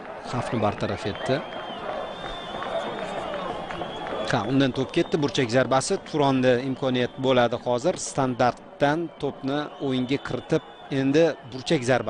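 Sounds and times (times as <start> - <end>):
faint crowd noise: 0.0 - 12.0.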